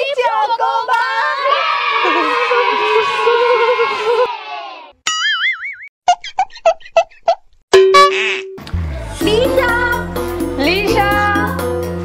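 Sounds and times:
cartoon boing sound effect: 0:07.8 - 0:08.6.

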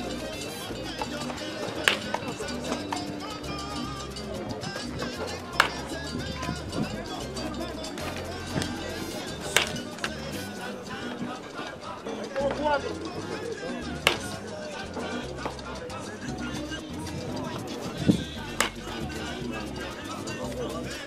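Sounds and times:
background music with steady beat: 0:00.0 - 0:21.0
wooden bat hitting ball: 0:01.8 - 0:02.3, 0:05.6 - 0:05.9, 0:09.5 - 0:09.9, 0:14.0 - 0:14.4, 0:18.6 - 0:18.9.

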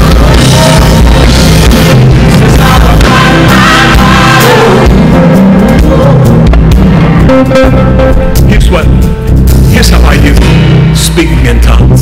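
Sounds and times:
drum hits: 0:00.0 - 0:12.0
worship band playing loudly: 0:00.0 - 0:12.0.

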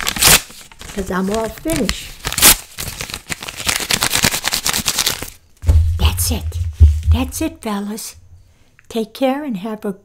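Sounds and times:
paper tearing and crumpling: 0:00.0 - 0:05.4
low rumble: 0:05.6 - 0:08.4.

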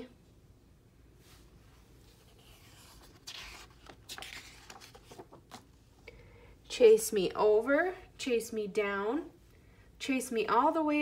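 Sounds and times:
book page turning: 0:02.0 - 0:05.8.

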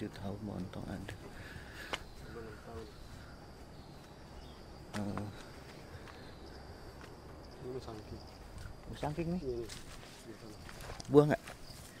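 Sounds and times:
high-pitched insect drone: 0:00.0 - 0:12.0.

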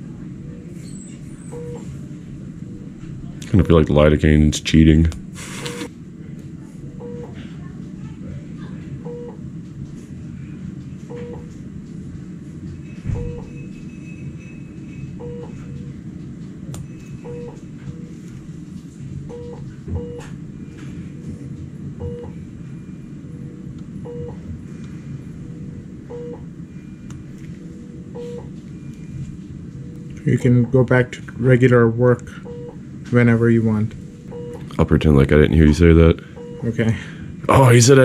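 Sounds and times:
low room hum: 0:00.0 - 0:38.0
low electronic beep: 0:12.8 - 0:15.8, 0:16.8 - 0:18.2, 0:22.0 - 0:23.1, 0:24.0 - 0:24.4, 0:26.1 - 0:27.1, 0:34.0 - 0:34.6.

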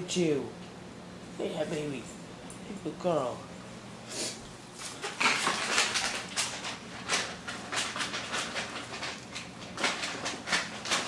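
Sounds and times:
dog clicks and scuffs: 0:04.8 - 0:11.0.

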